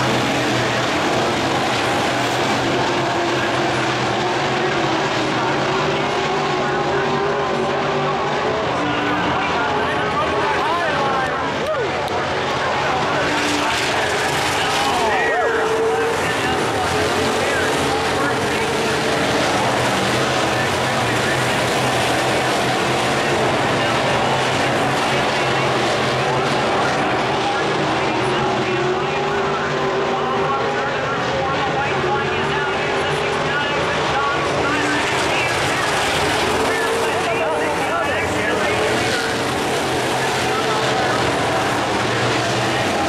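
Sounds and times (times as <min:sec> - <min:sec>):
race car engines droning: 0:00.0 - 0:43.0.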